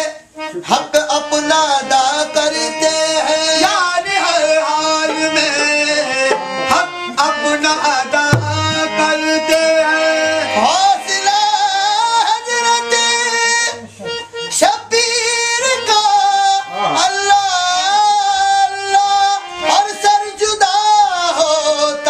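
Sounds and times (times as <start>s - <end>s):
harmonium: 0.0s - 22.0s.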